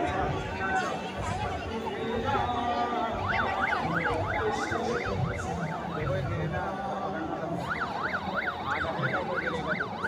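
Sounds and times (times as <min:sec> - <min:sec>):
murmur of large crowd: 0:00.0 - 0:10.0
electronic siren yelping: 0:03.2 - 0:06.2, 0:07.6 - 0:10.0.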